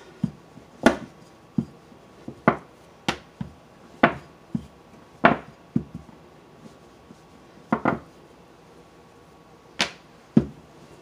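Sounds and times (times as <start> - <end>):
rolling pin knocking on mat: 0.2 - 1.7, 2.3 - 6.1, 7.7 - 8.1, 9.8 - 10.6.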